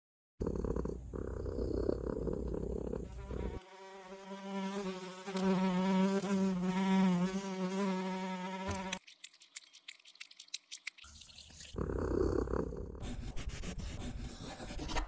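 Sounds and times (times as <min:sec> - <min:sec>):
fly buzzing: 0:01.4 - 0:09.0.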